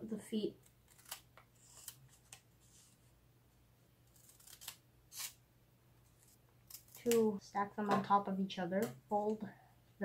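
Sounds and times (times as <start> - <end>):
scissors cutting paper: 0.6 - 2.4, 4.1 - 5.4.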